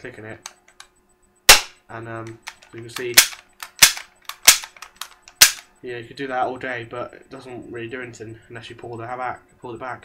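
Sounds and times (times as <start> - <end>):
pistol hammer and trigger clicks: 1.5 - 5.7.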